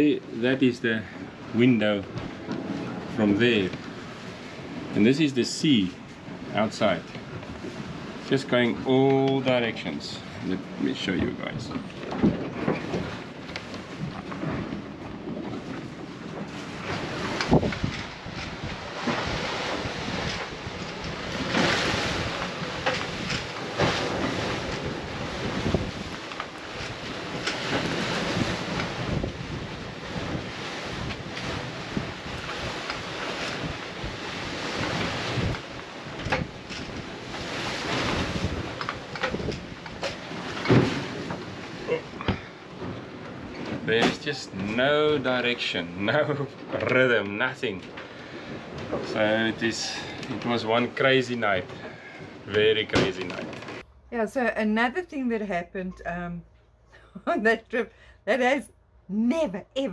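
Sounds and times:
waves breaking: 0.0 - 54.0
wind buffeting microphone: 10.0 - 44.0.

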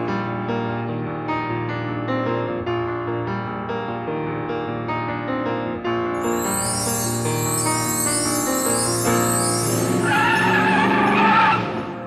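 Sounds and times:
high wavering screech: 6.2 - 11.6.

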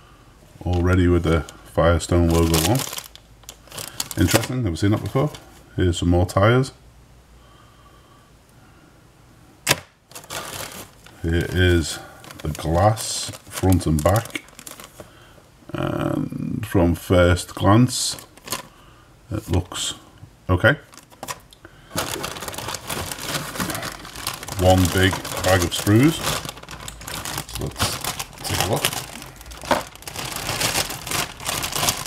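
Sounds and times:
plastic bag crinkling: 0.6 - 5.6, 10.1 - 15.2, 17.9 - 18.8, 20.8 - 32.0.

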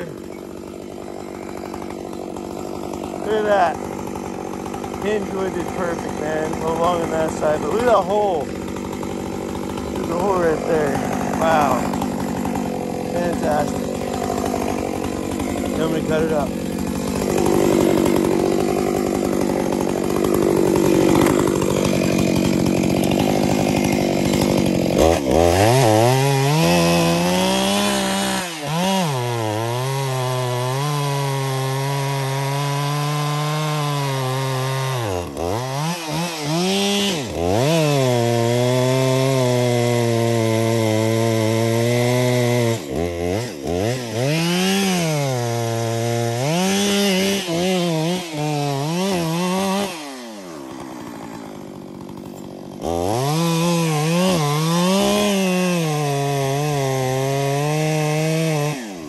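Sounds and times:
chainsaw cutting at high revs: 0.0 - 59.0.

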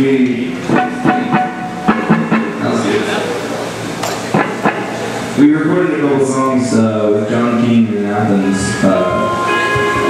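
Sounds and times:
people talking: 0.0 - 1.6, 2.3 - 10.0
short instrument notes: 0.6 - 3.2, 8.2 - 10.0
scattered drum hits: 0.7 - 2.7.

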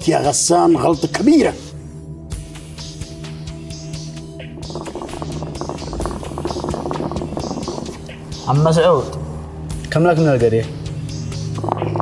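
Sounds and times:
background music with drone: 0.0 - 12.0
hookah water bubbling: 4.5 - 8.2.

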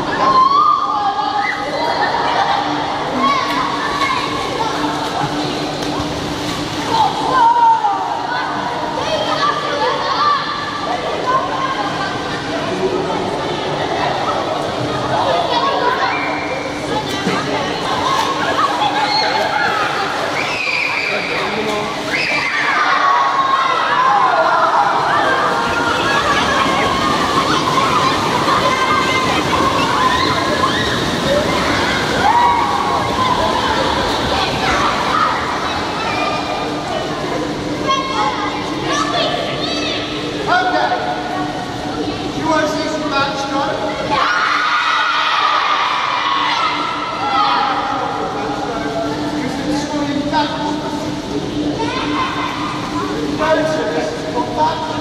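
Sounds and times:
children chattering and calling out: 0.0 - 55.0
heavy water splashing: 0.0 - 55.0
indoor swimming pool hubbub: 0.0 - 55.0.

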